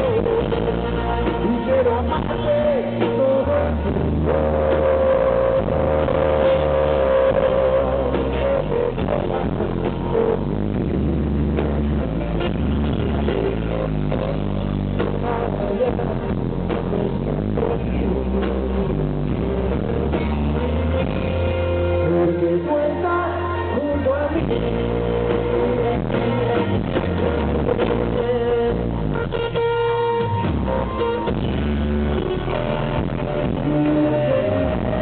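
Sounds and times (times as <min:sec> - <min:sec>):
bass and drums: 0:00.0 - 0:35.0
electric guitar: 0:00.0 - 0:35.0.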